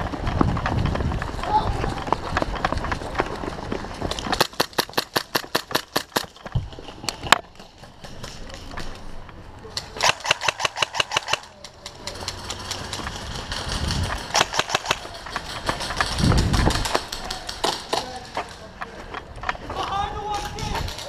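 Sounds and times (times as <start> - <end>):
airsoft guns firing: 4.3 - 6.4, 9.8 - 18.4.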